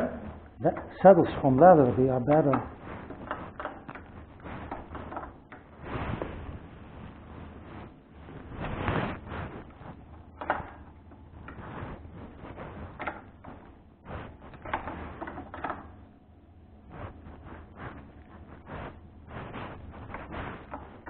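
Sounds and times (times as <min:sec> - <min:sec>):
steady low hum: 0:00.0 - 0:21.0
objects knocking and rattling: 0:02.2 - 0:06.6, 0:08.7 - 0:16.0.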